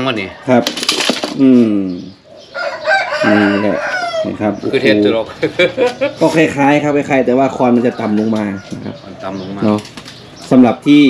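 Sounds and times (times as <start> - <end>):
rooster crowing: 2.5 - 4.4.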